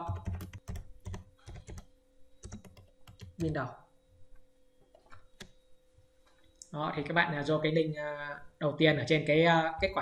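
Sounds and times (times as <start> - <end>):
typing on a keyboard: 0.0 - 3.6
faint steady hum: 0.0 - 10.0.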